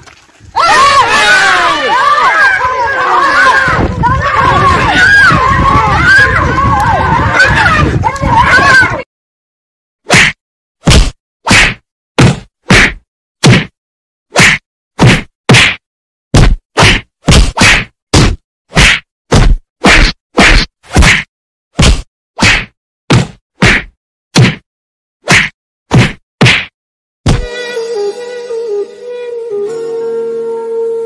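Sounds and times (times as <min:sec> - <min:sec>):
whack sound effects: 0:10.1 - 0:15.8, 0:16.4 - 0:27.5
music: 0:27.3 - 0:31.0.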